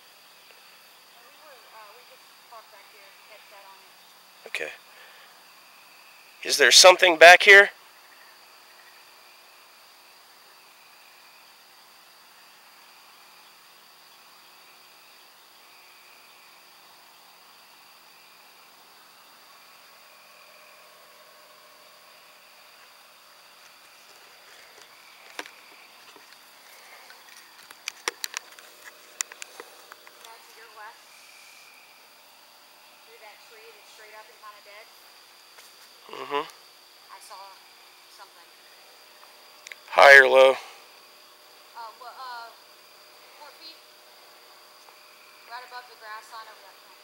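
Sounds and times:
night insects trilling: 0.0s - 47.0s.

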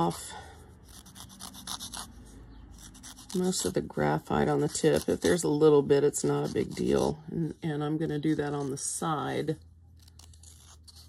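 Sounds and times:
paper tip scratching emery board: 0.8s - 3.8s.

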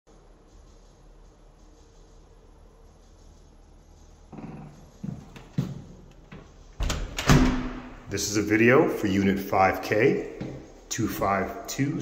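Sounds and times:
door lock and latch clicks: 6.8s - 7.9s
door swinging open with thud: 6.8s - 8.0s.

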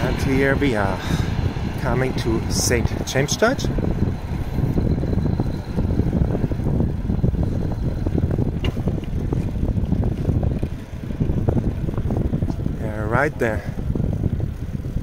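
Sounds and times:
wind noise on microphone: 0.0s - 15.0s.

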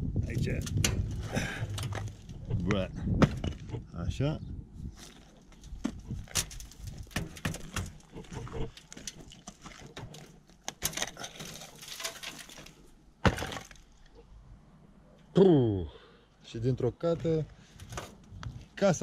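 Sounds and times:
knocks and scrapes of brick rubble: 0.2s - 4.0s, 4.8s - 14.3s, 17.6s - 18.8s.

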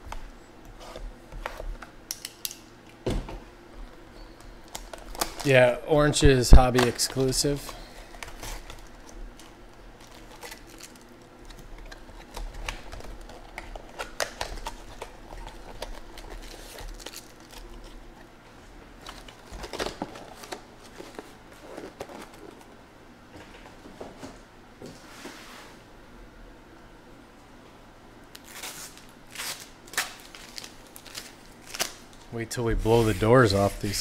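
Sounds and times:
card packs rustling and clicking: 4.4s - 18.3s, 18.9s - 22.7s, 28.4s - 34.0s
plastic shrink wrap crinkling: 4.6s - 18.2s, 28.3s - 34.0s.

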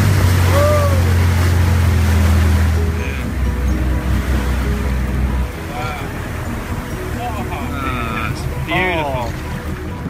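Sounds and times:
boat engine humming: 0.0s - 10.0s
water noise: 0.0s - 10.0s
wind: 0.0s - 10.0s.

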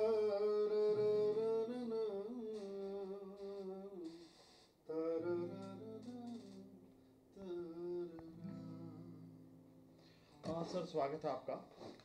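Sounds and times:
acoustic guitar: 0.0s - 4.2s, 4.9s - 12.0s
man humming a slow melody: 0.0s - 9.6s.

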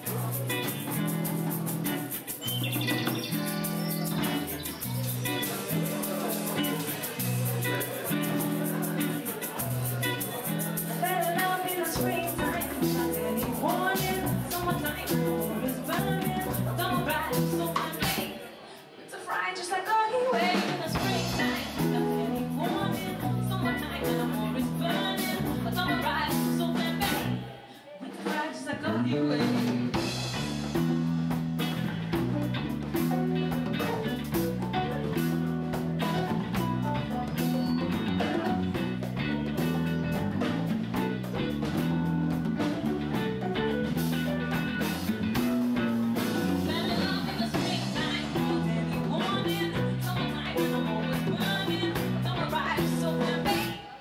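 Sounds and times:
electric guitar chords: 0.0s - 18.2s, 20.9s - 27.5s, 29.1s - 54.0s
hand shaker beat: 0.0s - 18.4s, 20.9s - 27.4s, 29.9s - 53.8s
drums: 0.0s - 54.0s
woman singing into microphone: 11.0s - 18.5s, 19.1s - 29.9s, 46.5s - 54.0s.

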